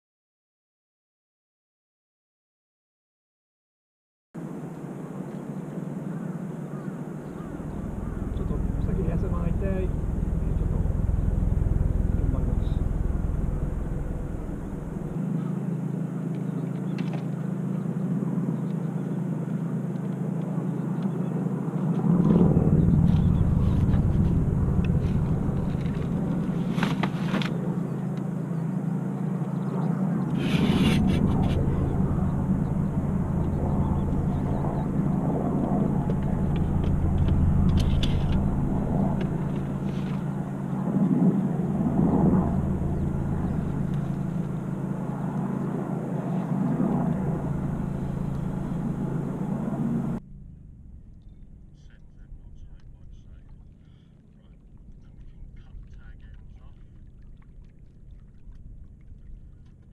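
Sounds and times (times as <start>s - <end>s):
steady low hum: 4.4s - 59.9s
low rumbles: 5.4s - 59.9s.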